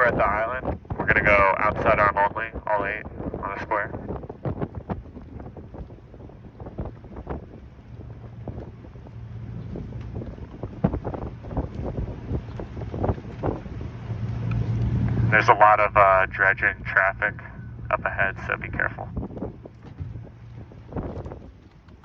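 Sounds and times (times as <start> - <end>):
boat engine humming: 0.0 - 22.0
wind buffeting microphone: 0.0 - 22.0.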